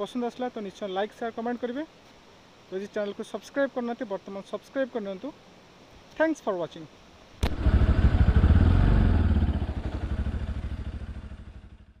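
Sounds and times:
motorcycle engine running: 0:07.4 - 0:12.0.

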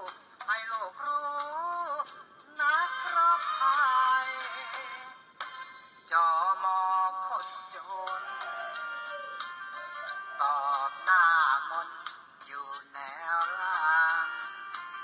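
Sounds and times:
person singing: 0:00.0 - 0:05.2, 0:06.1 - 0:15.0
backing music: 0:00.0 - 0:15.0.

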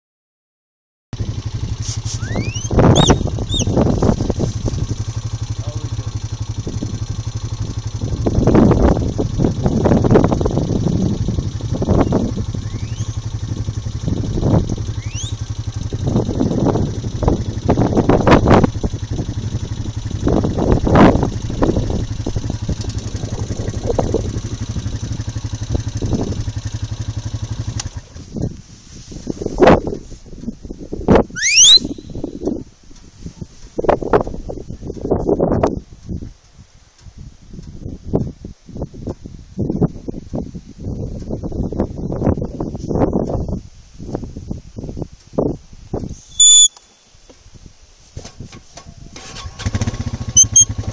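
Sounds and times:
quad bike engine idling: 0:01.2 - 0:50.9
short rising whistles: 0:01.8 - 0:03.8, 0:12.6 - 0:13.2, 0:14.9 - 0:15.5, 0:31.3 - 0:32.2, 0:46.2 - 0:47.0, 0:50.4 - 0:50.7.

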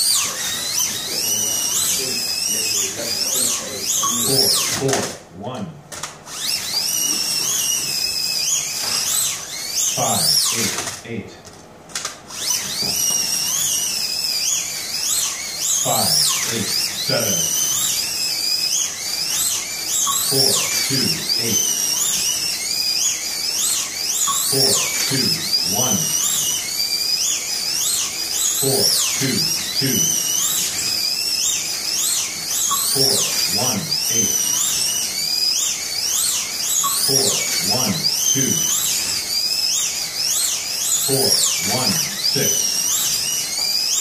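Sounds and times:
slot car motors whining: 0:00.0 - 0:05.3, 0:05.9 - 0:11.2, 0:11.9 - 0:44.0.

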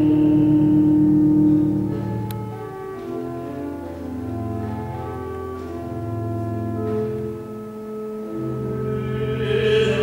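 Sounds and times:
church organ chord: 0:00.0 - 0:10.0
singing: 0:09.1 - 0:10.0.

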